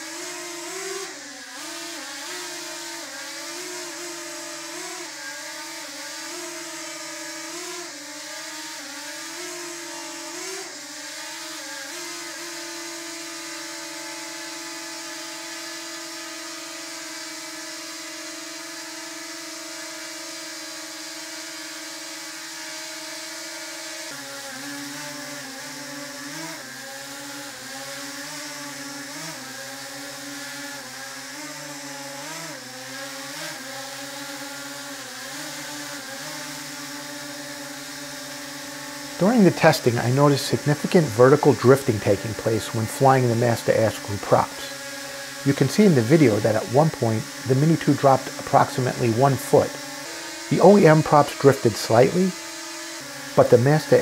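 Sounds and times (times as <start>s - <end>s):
drone propellers whirring: 0.0s - 54.0s.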